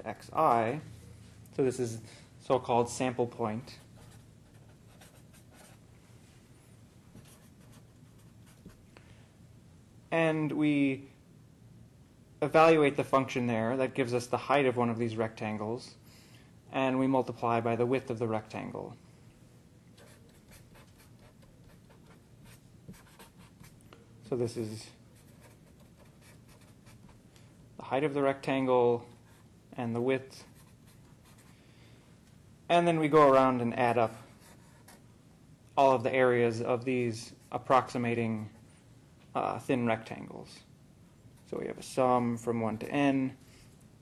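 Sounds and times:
marker writing on paper: 20.0 - 23.8.

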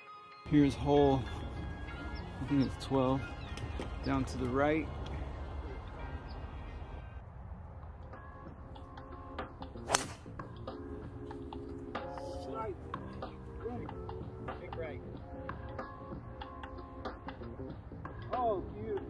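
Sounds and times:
background music: 0.0 - 7.2, 7.8 - 19.0
golf club striking ball: 9.8 - 10.4.

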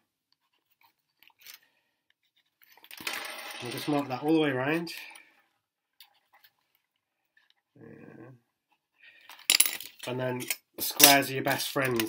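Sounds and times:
vinyl sheet rustling: 2.9 - 5.1.

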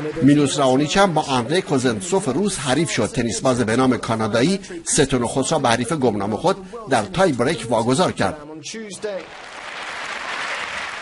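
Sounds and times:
crowd applauding: 9.2 - 11.0.

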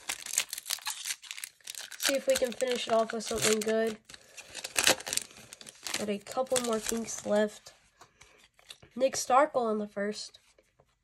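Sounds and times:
foil wrapper crinkling: 0.0 - 7.4.

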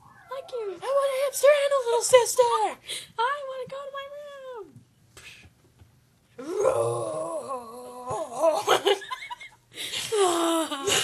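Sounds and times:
person wailing: 6.4 - 8.8.

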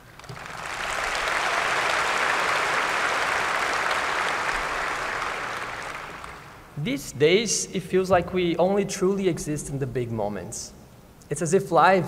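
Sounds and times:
audience applauding: 0.0 - 6.7.

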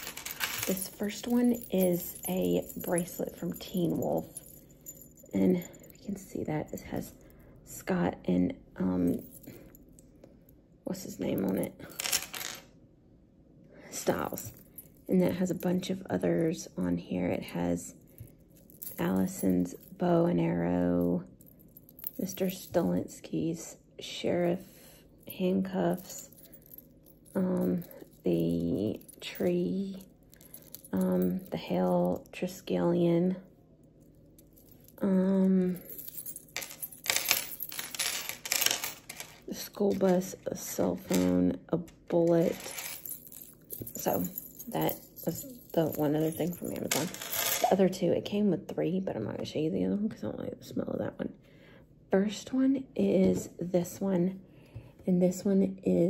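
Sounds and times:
metal charms clinking: 0.0 - 7.0, 35.7 - 40.3, 42.1 - 47.7.

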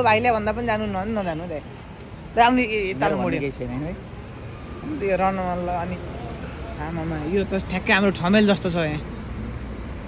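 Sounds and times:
city street traffic rumble: 0.0 - 10.0.

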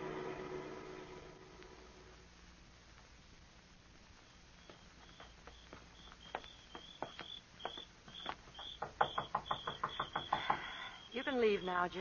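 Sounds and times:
sharp taps or clicks: 4.7 - 10.8.

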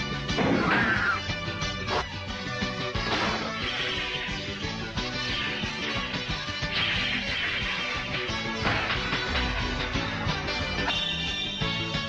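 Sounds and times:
dramatic soundtrack music: 0.0 - 12.0.

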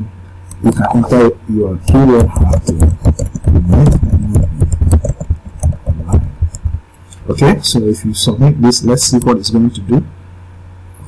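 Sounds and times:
keyboard typing clicks: 1.9 - 6.8
low thuds: 1.9 - 6.9.

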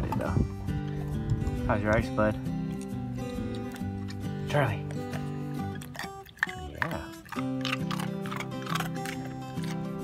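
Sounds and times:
background music with held notes: 0.0 - 10.0
dog crunching ice: 4.9 - 10.0.

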